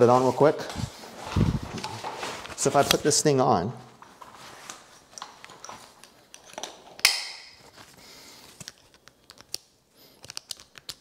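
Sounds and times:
plastic buckles clicking: 8.6 - 11.0.

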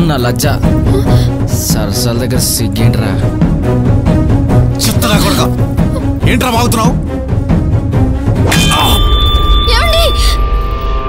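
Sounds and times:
low background music: 0.0 - 9.3.

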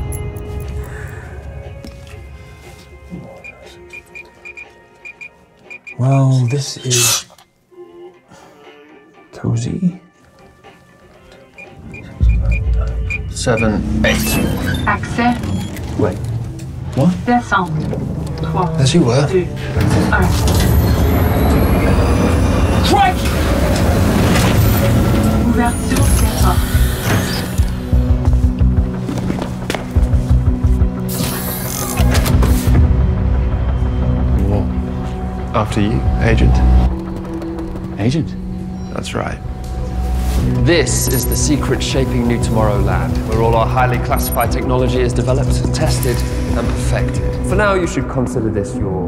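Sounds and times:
film music score: 0.0 - 49.0
dial short high beeps: 3.9 - 6.6
pulsing low beat: 11.7 - 14.1.

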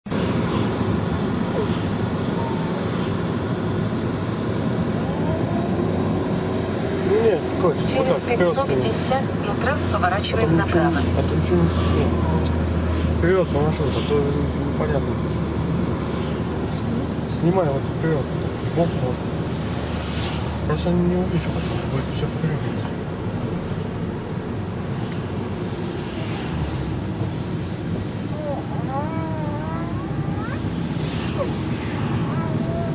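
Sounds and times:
car road and engine noise: 0.0 - 32.9
faint voices: 25.3 - 32.9.

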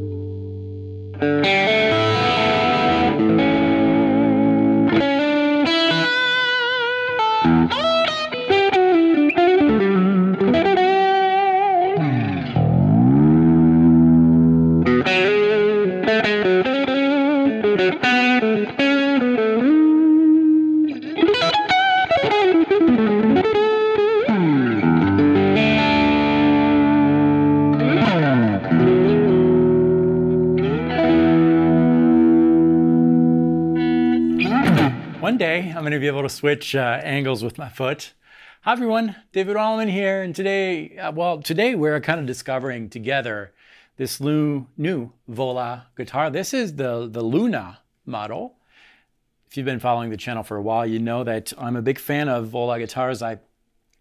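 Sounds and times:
electric guitar lead lines: 0.0 - 36.2.

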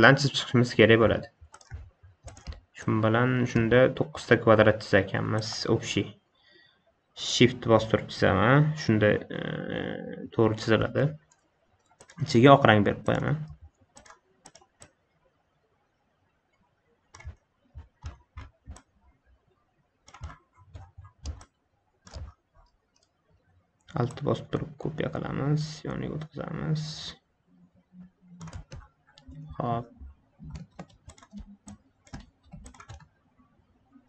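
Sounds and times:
quick clicks on computer controls: 1.1 - 2.7, 11.0 - 15.0, 17.1 - 19.0, 20.0 - 23.2, 28.0 - 33.2.

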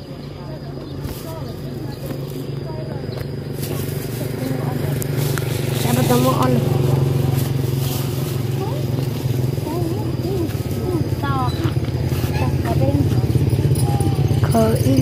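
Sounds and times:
people talking quietly: 0.0 - 15.0
motor idling: 1.4 - 15.0.

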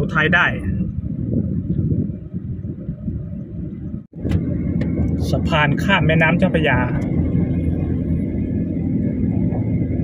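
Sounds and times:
car road rumble from inside cabin: 0.0 - 10.0.

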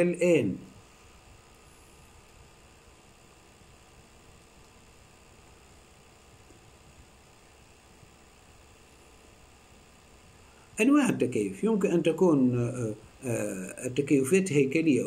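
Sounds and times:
faint steady hiss: 0.0 - 15.0.

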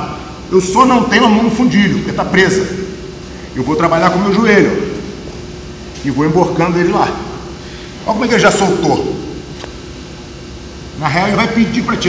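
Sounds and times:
fan hum: 0.0 - 12.0.

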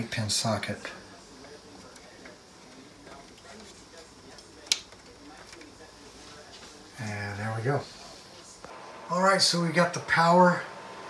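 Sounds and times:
faint handling noise: 0.8 - 7.1.

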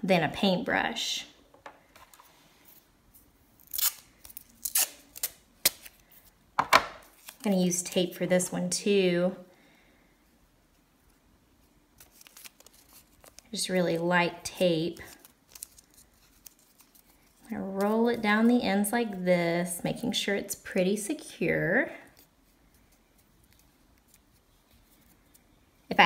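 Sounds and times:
paper tape crinkling: 2.0 - 6.4, 7.0 - 7.6, 11.9 - 18.2, 22.0 - 25.6
masking tape pulled off roll: 3.6 - 6.0.

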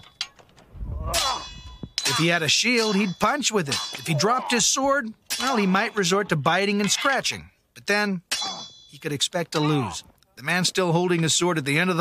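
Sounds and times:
sword clanging on metal armour: 0.0 - 0.6, 1.2 - 4.7, 8.3 - 9.0.

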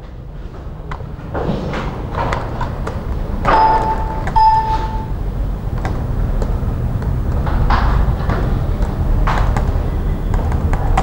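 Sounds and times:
steady low hum: 0.0 - 11.0
short held tones: 3.5 - 5.2.

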